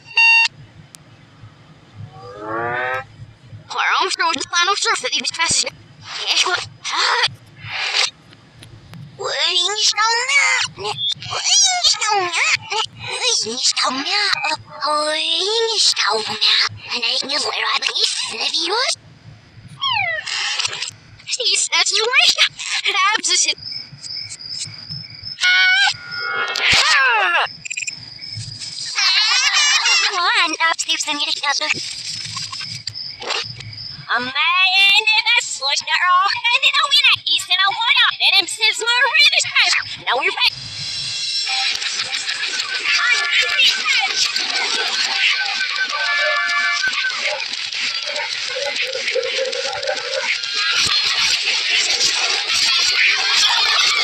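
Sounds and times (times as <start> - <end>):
reversed music: 1.4 - 3.7
garbled reversed voices: 2.0 - 8.1, 9.2 - 19.0, 19.8 - 28.0, 28.6 - 54.0.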